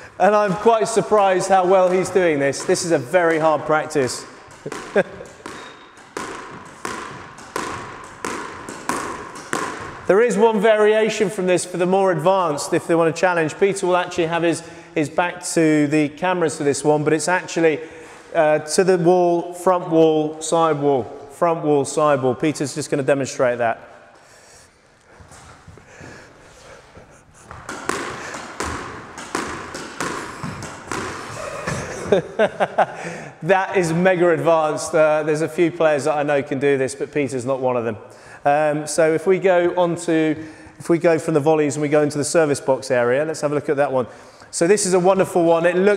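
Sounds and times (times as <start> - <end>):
squash ball hitting racket and wall: 0.0 - 14.7, 25.1 - 32.9.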